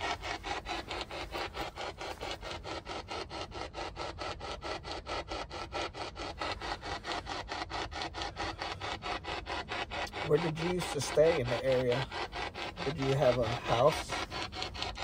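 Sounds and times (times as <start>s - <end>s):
choppy radio static: 12.8s - 14.3s.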